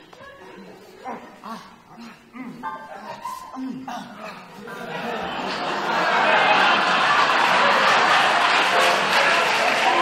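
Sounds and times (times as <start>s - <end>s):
men making wordless vocal sounds: 0.7s - 6.0s.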